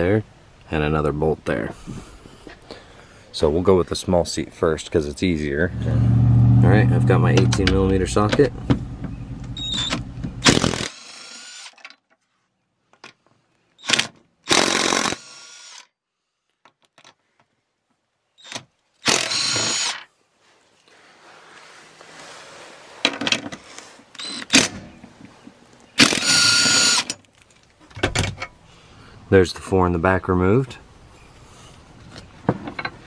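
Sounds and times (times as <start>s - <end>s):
impact wrench bursts: 9.6s - 11.8s, 13.8s - 15.9s, 18.4s - 20.0s, 24.2s - 24.8s, 26.0s - 27.2s.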